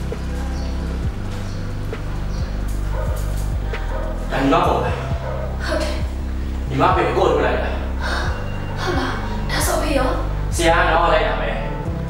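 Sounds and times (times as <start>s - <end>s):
film music with low beat: 0.0s - 12.0s
woman speaking agitatedly: 5.6s - 6.1s, 8.1s - 10.3s.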